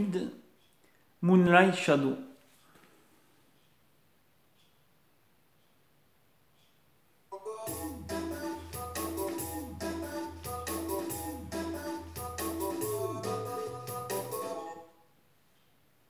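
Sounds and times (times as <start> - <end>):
organ-like chords: 7.3 - 15.0
synth bass line: 7.7 - 14.7.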